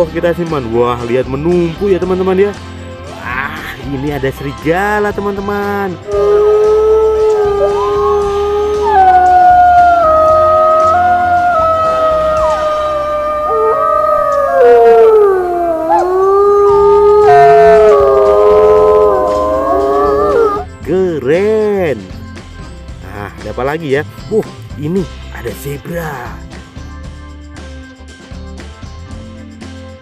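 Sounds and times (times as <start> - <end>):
wolves howling: 6.0 - 20.7.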